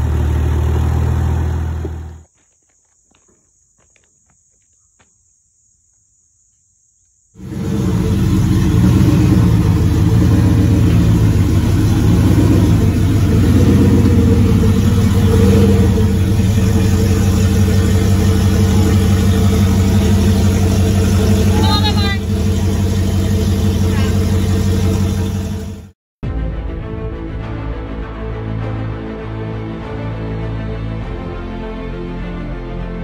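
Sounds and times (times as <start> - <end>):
vehicle engine running loudly: 0.0 - 2.2, 7.4 - 26.0.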